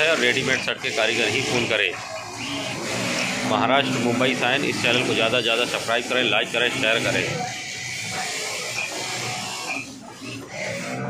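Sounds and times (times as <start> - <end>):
sewing machines humming: 0.0 - 11.0.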